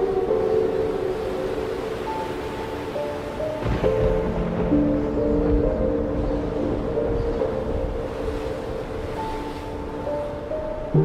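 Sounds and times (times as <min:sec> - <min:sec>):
ambient music of held notes: 0:00.0 - 0:11.0
surf: 0:00.0 - 0:11.0
wind: 0:00.0 - 0:11.0.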